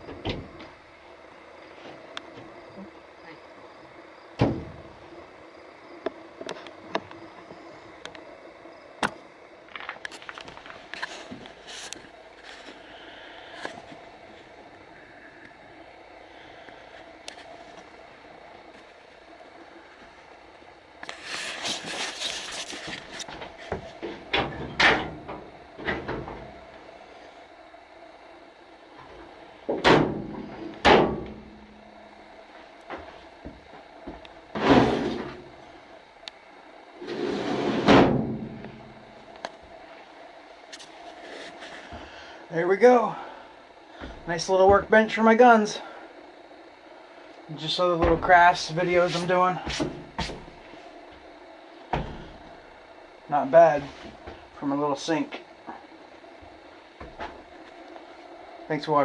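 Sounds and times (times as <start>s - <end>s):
cabinet doors shutting: 0.1s - 0.7s, 4.4s - 4.9s, 29.8s - 31.4s, 37.0s - 38.8s
drawer sliding: 37.0s - 38.2s.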